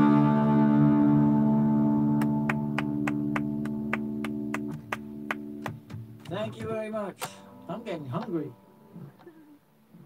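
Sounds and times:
electric guitar chord ringing: 0.0 - 5.7.

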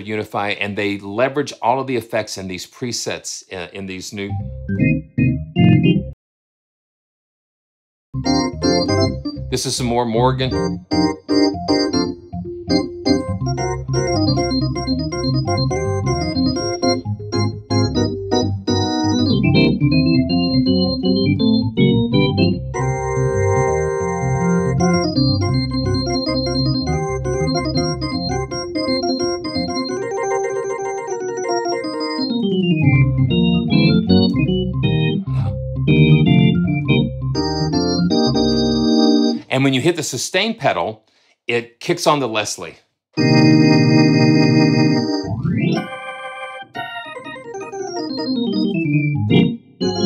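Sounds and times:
organ chords and runs: 4.3 - 6.2, 8.2 - 39.4, 43.2 - 50.0.

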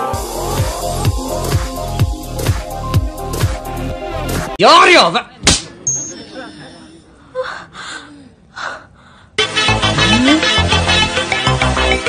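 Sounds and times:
person gasping: 6.4 - 9.4.

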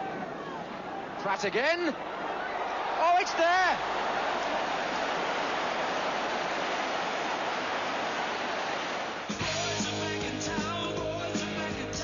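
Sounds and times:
stadium crowd roaring: 0.0 - 9.8
guitar-led rock music: 9.3 - 12.0.

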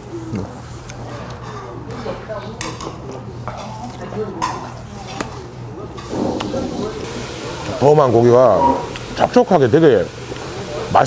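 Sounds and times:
faint background chatter: 0.0 - 11.0.

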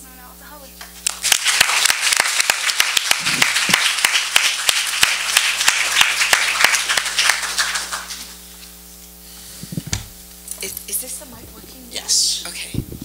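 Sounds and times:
audience applauding: 1.0 - 8.4.

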